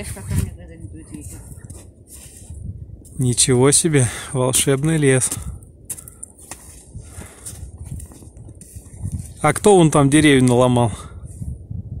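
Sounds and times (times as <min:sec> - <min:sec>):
footsteps in snow: 0:01.3 - 0:02.6, 0:05.2 - 0:09.4.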